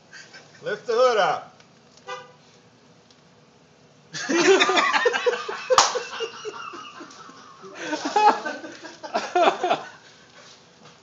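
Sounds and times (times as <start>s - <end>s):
men laughing: 0.1s - 0.7s, 4.1s - 10.1s.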